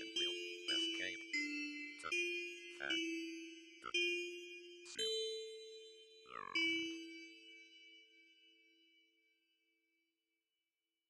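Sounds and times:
bell-like struck notes: 0.0s - 9.2s.

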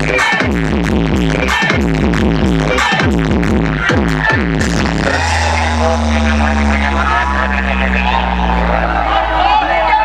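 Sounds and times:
loud electronic dance music: 0.0s - 10.0s
deep held bass note: 4.6s - 9.9s
falling bass sweeps: 4.6s - 10.0s
synth tones: 5.0s - 9.4s.

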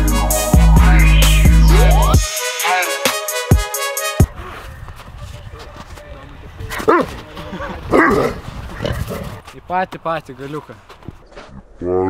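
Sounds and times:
dog barking: 6.8s - 7.1s, 7.9s - 8.4s.

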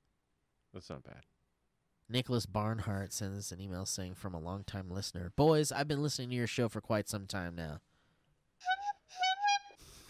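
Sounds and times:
whistle-like notes: 8.6s - 10.0s.

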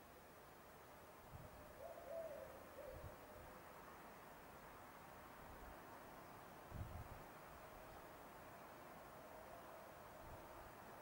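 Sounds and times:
low hooting bird calls: 1.6s - 3.4s.

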